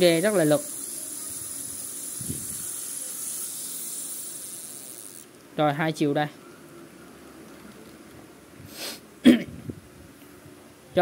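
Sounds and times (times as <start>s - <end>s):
fishing reel whirring: 0.0s - 5.3s.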